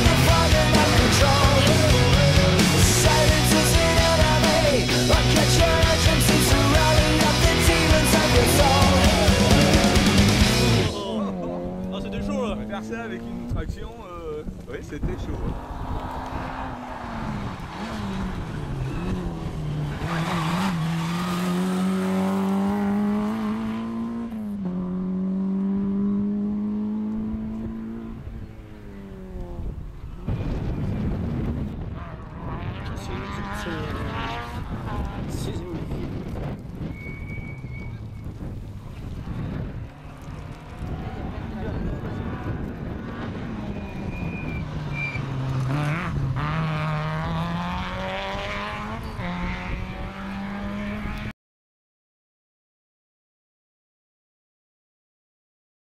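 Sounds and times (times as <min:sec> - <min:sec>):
second car engine slowing and accelerating: 0:00.0 - 0:13.7, 0:14.5 - 0:51.3
rally car engine accelerating: 0:00.0 - 0:13.8, 0:15.1 - 0:51.3.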